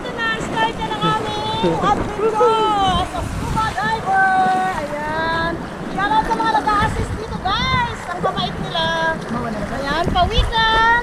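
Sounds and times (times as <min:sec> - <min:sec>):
water sloshing: 0:00.0 - 0:11.0
wind buffeting: 0:00.0 - 0:11.0.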